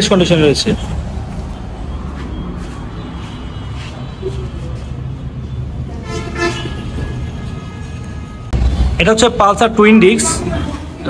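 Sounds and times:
low rumble of road traffic: 0.0 - 11.0
vehicle horn: 5.9 - 8.6.

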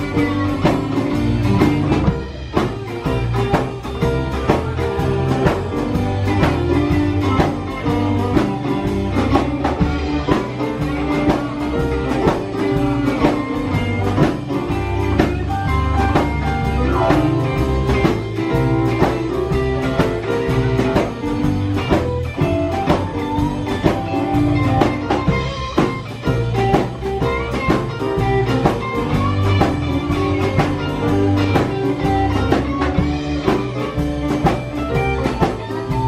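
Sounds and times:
drum kit beat: 0.0 - 36.0
electric guitar: 0.0 - 36.0
electric keyboard: 0.0 - 36.0.

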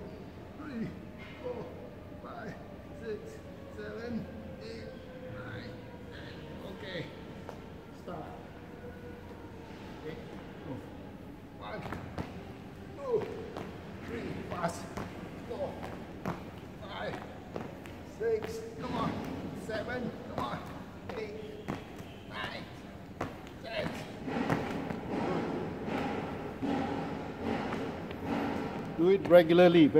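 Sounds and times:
indistinct voices: 8.0 - 29.9.

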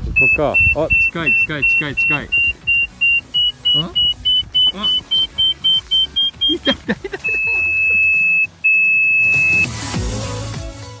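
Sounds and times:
long high-pitched beeps: 0.2 - 9.8
music: 1.0 - 11.0.

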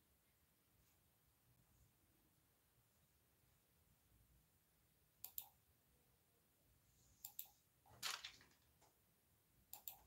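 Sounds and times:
small sharp clicks: 5.2 - 5.6, 9.7 - 10.0.

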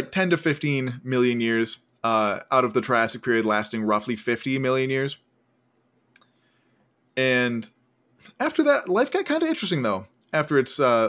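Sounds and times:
person speaking: 0.0 - 5.2, 7.2 - 7.7, 8.3 - 11.0.

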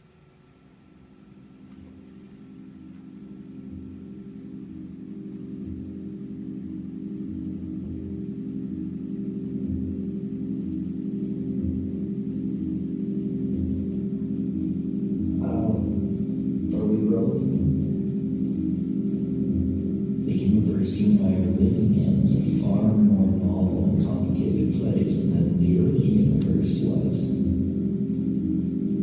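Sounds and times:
low musical drone: 0.0 - 29.0
slow uneven throb: 0.0 - 29.0.

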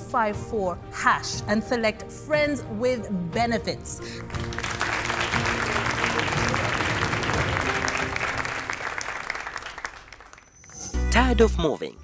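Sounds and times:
background music: 0.0 - 12.0
audience applauding: 4.2 - 10.8.

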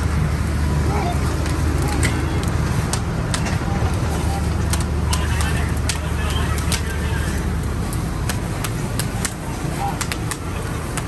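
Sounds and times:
fire engine rumbling: 0.0 - 11.0
fire popping and crackling: 0.0 - 11.0.

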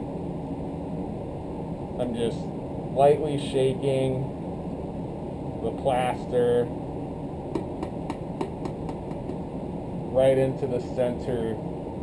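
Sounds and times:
ventilation rushing hum: 0.0 - 12.0.

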